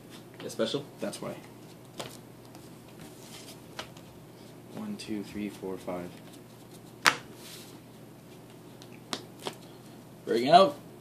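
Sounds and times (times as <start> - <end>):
trading cards being handled: 5.8 - 10.0.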